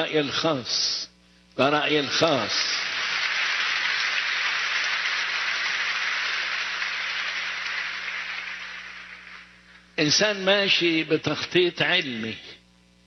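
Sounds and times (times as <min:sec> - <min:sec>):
crowd applauding: 0:02.0 - 0:09.6.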